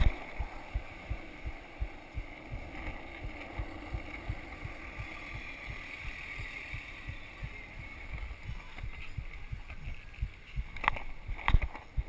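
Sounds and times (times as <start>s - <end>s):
low thuds: 0.0s - 12.0s
skateboard wheels rolling on asphalt: 0.0s - 12.0s.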